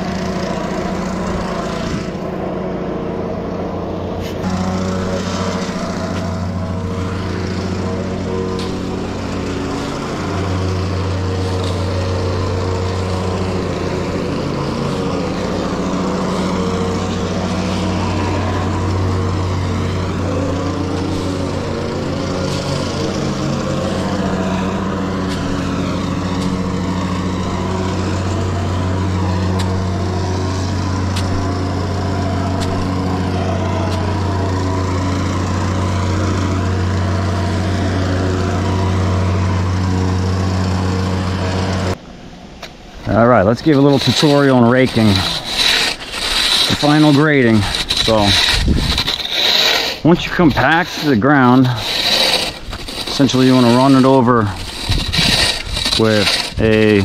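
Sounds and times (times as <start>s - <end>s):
small engine running: 0.0s - 57.0s
rake scraping through crushed stone: 4.2s - 42.0s, 43.1s - 57.0s.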